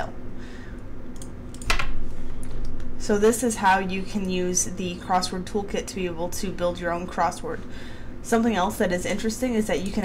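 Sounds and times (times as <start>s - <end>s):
keyboard and mouse clicks: 1.2s - 2.9s.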